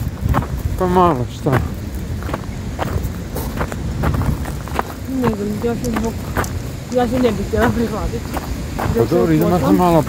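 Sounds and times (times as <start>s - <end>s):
low rumble on microphone: 0.0s - 9.2s
footsteps of people walking: 0.0s - 10.0s.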